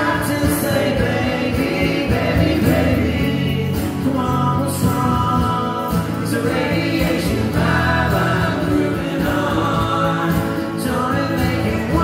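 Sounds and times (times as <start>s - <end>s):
strummed acoustic guitars: 0.0s - 12.0s
voices singing together: 0.0s - 12.0s.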